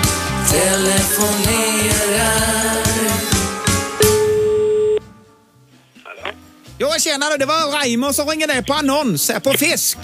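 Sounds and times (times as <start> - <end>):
sung radio jingle: 0.4 - 5.2
telephone-like tone: 4.0 - 5.1.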